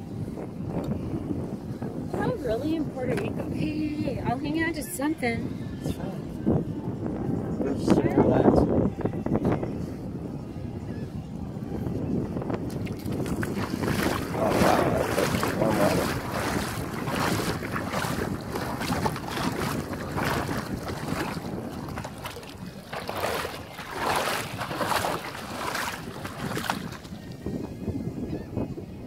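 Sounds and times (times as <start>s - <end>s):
wind on microphone: 0.0s - 29.0s
sea water splashing: 12.7s - 27.3s.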